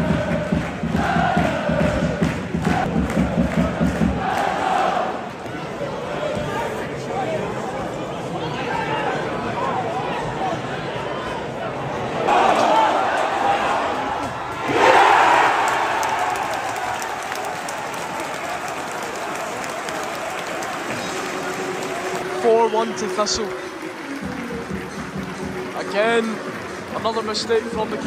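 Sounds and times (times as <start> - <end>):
crowd voices with singing: 0.0 - 16.0, 17.8 - 28.0
crowd goal cheer: 12.3 - 23.4.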